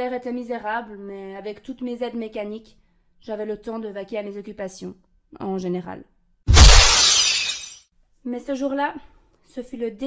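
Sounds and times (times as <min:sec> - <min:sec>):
breaking glass: 0:06.5 - 0:07.8
shop window smashing: 0:06.5 - 0:07.8.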